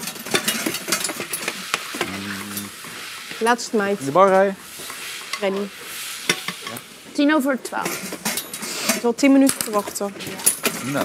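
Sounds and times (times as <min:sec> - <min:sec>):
utensils clicking on dishes: 0:00.0 - 0:03.4, 0:04.8 - 0:06.8, 0:07.6 - 0:11.0
steady hiss: 0:00.0 - 0:11.0.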